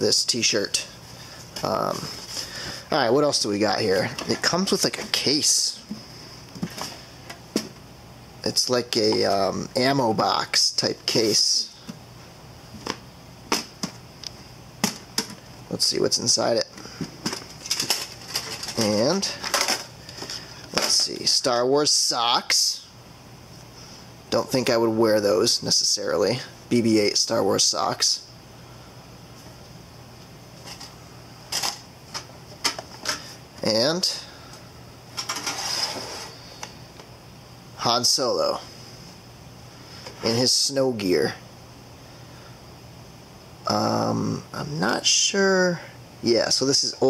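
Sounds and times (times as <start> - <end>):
cardboard box scraping out of case: 35.5 - 36.4.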